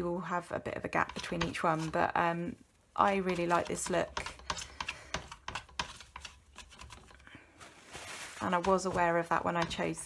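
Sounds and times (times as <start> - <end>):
paper towel tapping and rustling: 5.2 - 10.0.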